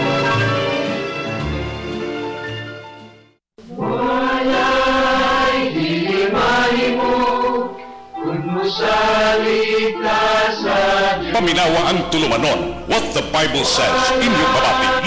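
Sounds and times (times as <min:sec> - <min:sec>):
choir singing held chords: 0:03.6 - 0:15.0.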